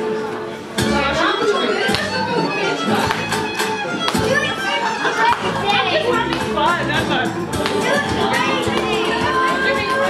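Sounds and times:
dance music: 0.8s - 10.0s.

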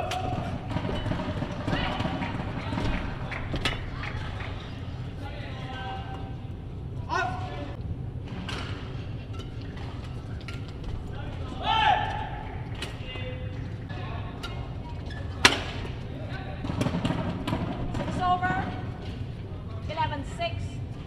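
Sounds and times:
rackets striking shuttlecock: 8.4s - 18.2s.

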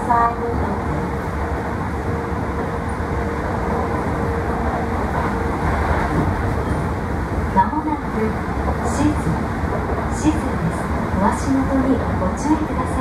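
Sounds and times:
train running rumble: 0.0s - 13.0s.

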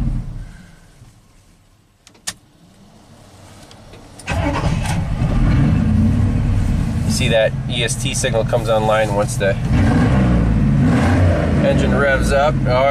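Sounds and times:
ignition click: 2.0s - 2.8s
truck engine starting and running: 2.0s - 12.9s.

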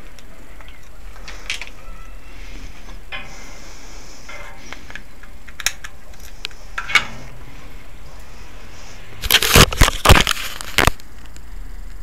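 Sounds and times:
low hum: 0.0s - 12.0s
camera being handled: 9.2s - 11.1s.

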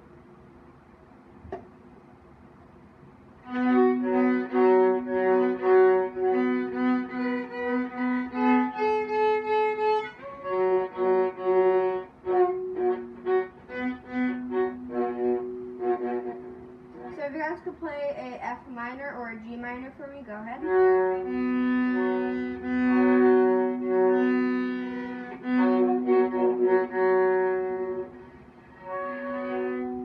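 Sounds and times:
bowed viola notes: 3.4s - 30.0s.

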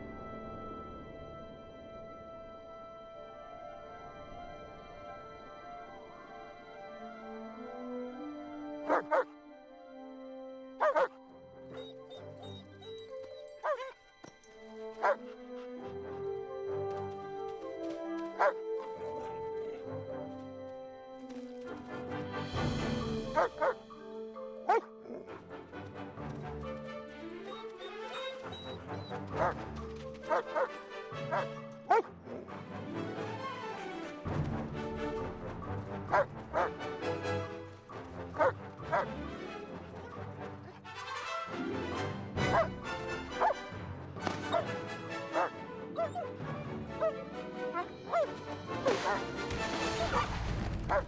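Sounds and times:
orchestral film music: 0.0s - 51.0s
dog barks: 8.8s - 9.3s, 10.8s - 11.2s, 13.6s - 14.0s, 15.0s - 15.4s, 18.4s - 18.6s, 23.3s - 25.5s, 27.5s - 29.7s, 30.3s - 32.6s, 35.8s - 37.0s, 38.3s - 39.3s, 40.0s - 43.7s, 44.3s - 46.4s, 47.0s - 50.3s.

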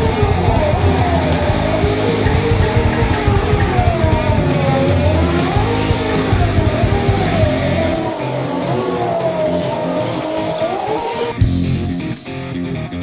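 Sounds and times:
tyres squealing: 0.0s - 11.4s
car engine revving: 0.0s - 12.4s
background music with steady beat: 0.0s - 13.0s.

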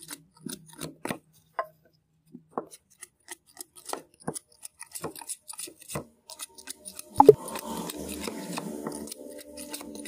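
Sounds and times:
knife splitting bamboo: 0.0s - 1.2s, 2.8s - 10.0s.

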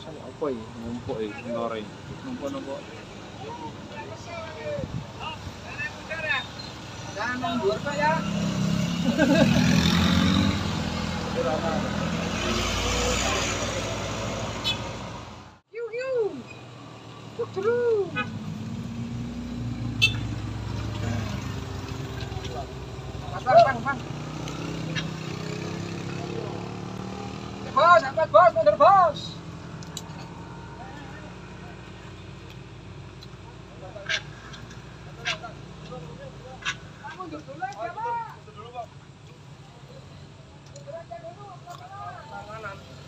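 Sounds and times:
engines humming uphill: 0.0s - 43.0s
motorcycle engine passing: 7.4s - 15.3s, 18.3s - 31.8s.

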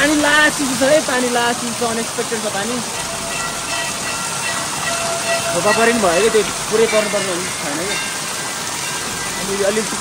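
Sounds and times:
water pouring and splashing: 0.0s - 10.0s.

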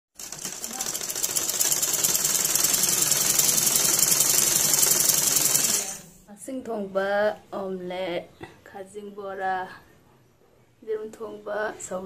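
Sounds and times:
sewing machine stitching: 0.2s - 6.2s.

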